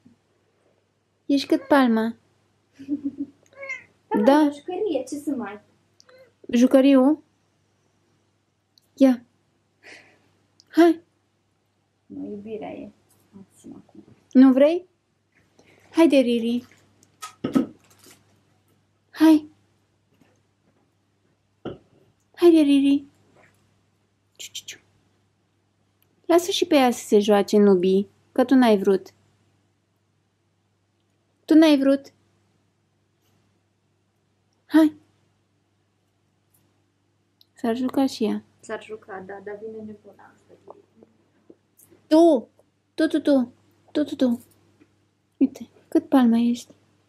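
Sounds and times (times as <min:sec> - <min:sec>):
room hum: 0:00.0 - 0:47.0
cat meowing: 0:01.4 - 0:02.0, 0:03.5 - 0:04.3
woman whispering hiss: 0:24.4 - 0:24.8.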